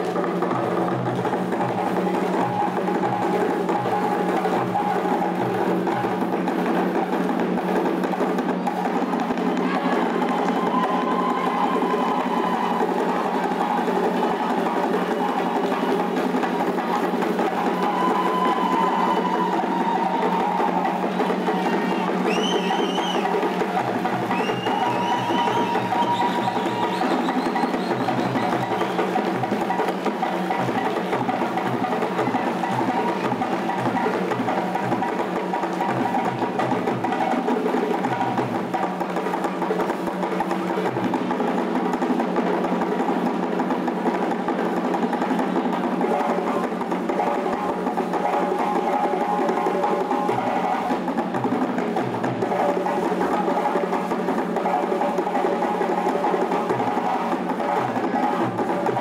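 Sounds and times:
hand drum ensemble: 0:00.0 - 0:59.0
high-pitched rising calls: 0:09.6 - 0:14.3, 0:17.4 - 0:29.2.

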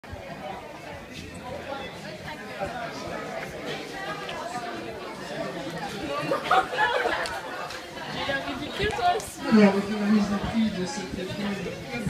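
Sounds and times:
people chatting: 0:00.1 - 0:12.0.

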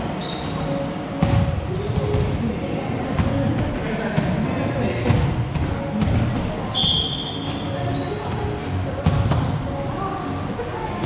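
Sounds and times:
shoe squeal: 0:00.1 - 0:00.8, 0:01.7 - 0:02.3, 0:03.4 - 0:03.8, 0:06.6 - 0:08.3, 0:09.6 - 0:10.3.

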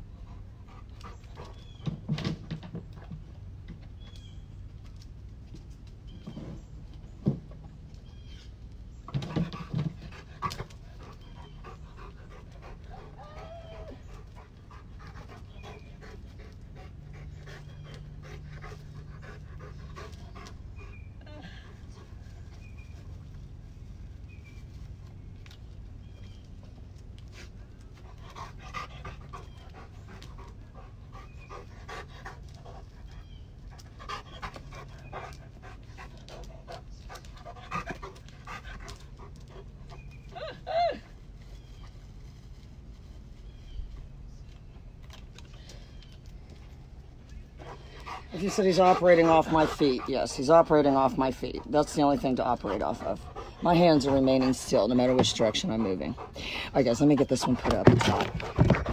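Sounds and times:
dog panting: 0:00.0 - 0:02.0, 0:09.2 - 0:22.9, 0:27.3 - 0:40.4, 0:46.0 - 0:58.9.

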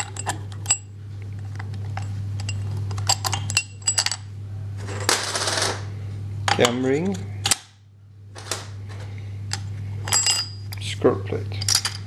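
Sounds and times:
metal parts clicking and clinking: 0:00.0 - 0:00.9, 0:02.0 - 0:04.2, 0:09.5 - 0:10.9, 0:11.5 - 0:12.0
steady low hum: 0:00.0 - 0:12.0.

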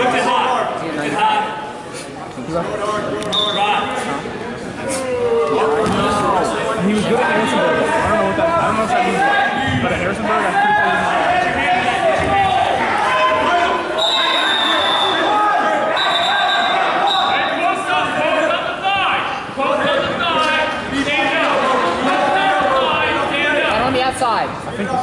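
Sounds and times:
many voices talking in a gymnasium: 0:00.0 - 0:25.0.

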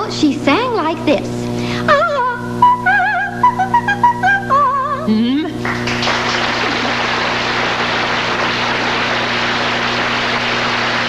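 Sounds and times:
person singing: 0:02.0 - 0:05.6
audience applauding: 0:05.6 - 0:11.0.

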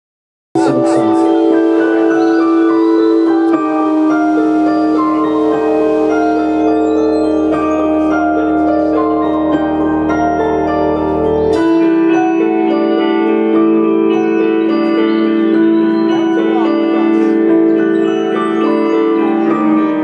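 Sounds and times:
keyboard chords: 0:00.6 - 0:20.0
rock band playing: 0:00.6 - 0:20.0.

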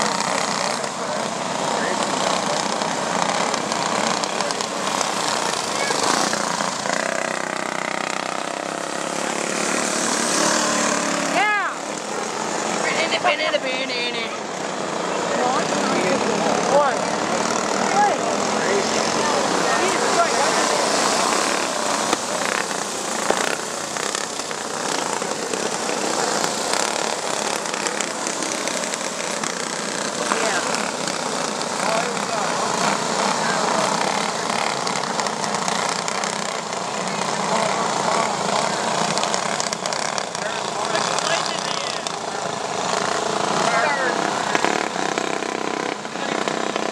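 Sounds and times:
go-kart engines racing: 0:00.0 - 0:46.9.

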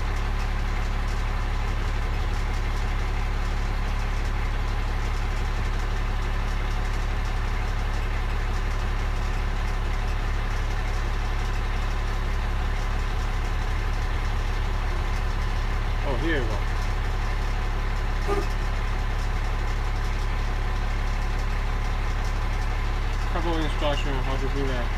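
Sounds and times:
diesel truck engine idling: 0:00.0 - 0:24.9.

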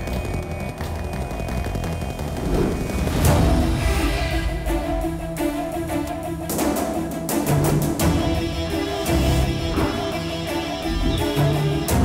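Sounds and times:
dramatic score with low percussion: 0:00.0 - 0:12.0.

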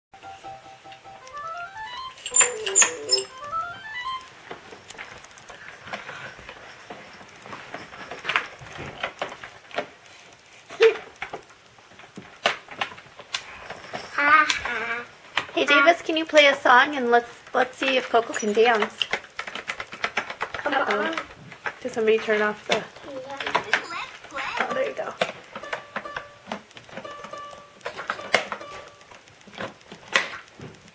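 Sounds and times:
toy piano beeping jingle: 0:00.2 - 0:04.3, 0:24.6 - 0:29.1
child's voice: 0:14.1 - 0:16.2, 0:22.9 - 0:25.0
hands clacking plastic buttons: 0:17.8 - 0:30.9
taps and clicks on plastic: 0:17.8 - 0:30.9.

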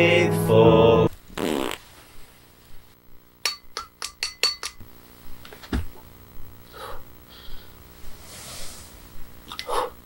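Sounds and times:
person singing a hymn chant: 0:00.0 - 0:01.1.

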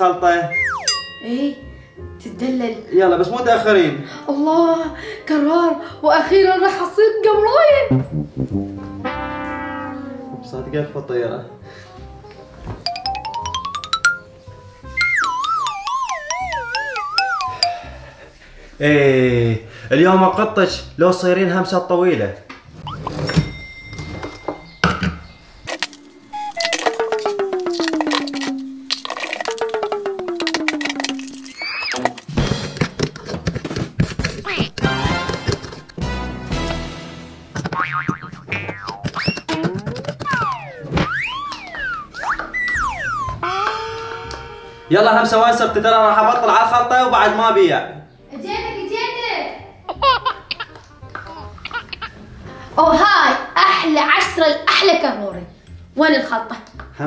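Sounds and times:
wobbling tone sliding downward: 0:00.5 - 0:01.1, 0:08.5 - 0:11.1, 0:15.0 - 0:17.6, 0:38.1 - 0:43.6
light beat: 0:26.3 - 0:28.9, 0:29.5 - 0:31.4, 0:34.0 - 0:36.1.

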